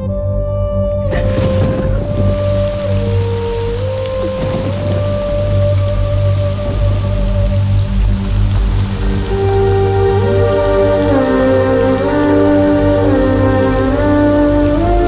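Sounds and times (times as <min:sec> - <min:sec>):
low steady drone: 0:00.0 - 0:15.0
slow sustained music notes: 0:00.0 - 0:15.0
steady rain falling: 0:00.9 - 0:15.0.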